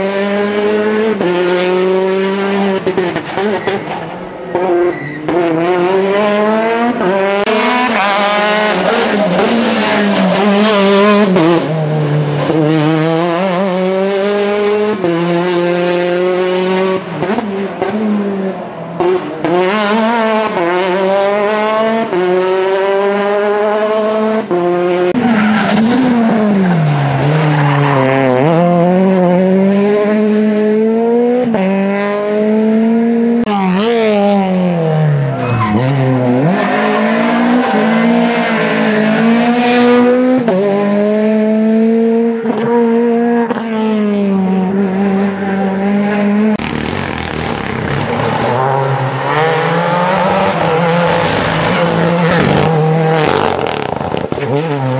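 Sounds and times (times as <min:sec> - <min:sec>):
rally car engine revving: 0:00.0 - 0:54.9.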